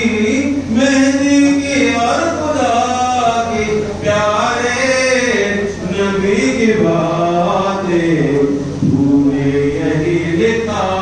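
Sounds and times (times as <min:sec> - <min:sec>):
man chanting unaccompanied: 0:00.0 - 0:11.0.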